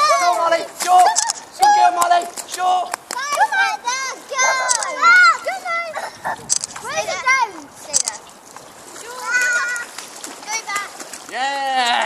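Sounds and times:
people's voices: 0:00.0 - 0:08.3.

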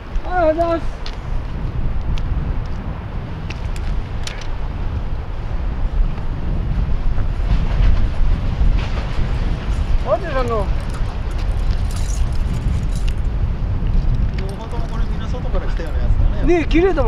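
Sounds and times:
wind buffeting microphone: 0:00.0 - 0:17.0
fishing gear clicks: 0:10.4 - 0:13.3.

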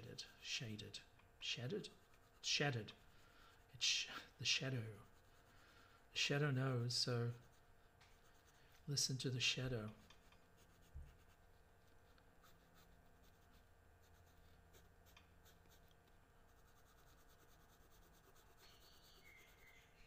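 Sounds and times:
pencil scratching on paper: 0:01.7 - 0:03.9, 0:04.6 - 0:06.0, 0:07.2 - 0:08.8, 0:09.8 - 0:11.5, 0:12.4 - 0:15.9, 0:16.5 - 0:19.7.

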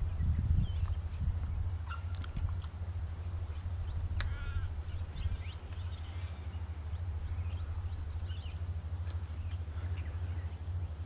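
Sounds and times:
wind buffeting microphone: 0:00.0 - 0:11.0
faint bird calls: 0:00.1 - 0:11.0.

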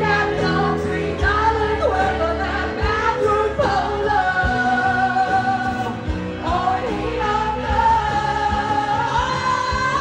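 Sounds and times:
backing track: 0:00.0 - 0:10.0
woman singing karaoke: 0:00.0 - 0:10.0.

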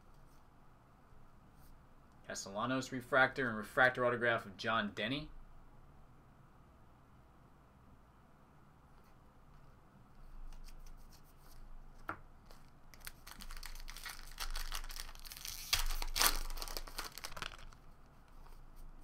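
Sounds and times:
foil wrapper tearing and crinkling: 0:13.0 - 0:17.9.

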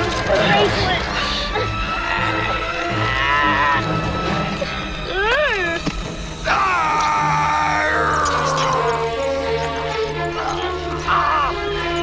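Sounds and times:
tense film score: 0:00.0 - 0:12.0.

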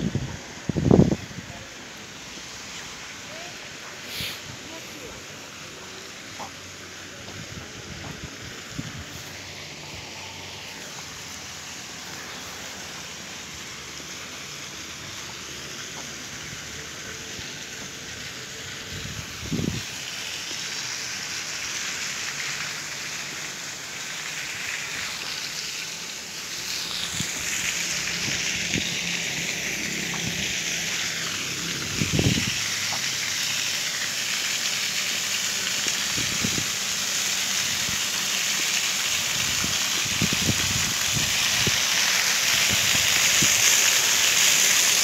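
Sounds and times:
fountain water splashing: 0:00.0 - 0:45.0.

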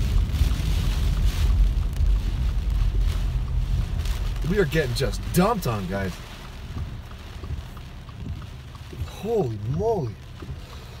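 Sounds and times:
car road and engine rumble: 0:00.0 - 0:11.0
rain hissing on car: 0:00.0 - 0:11.0.

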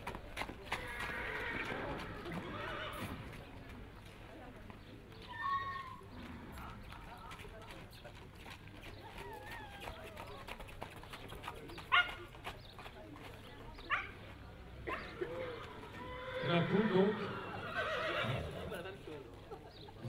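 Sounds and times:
hoofbeats on paving: 0:00.0 - 0:17.3
crowd murmur: 0:00.0 - 0:20.0.

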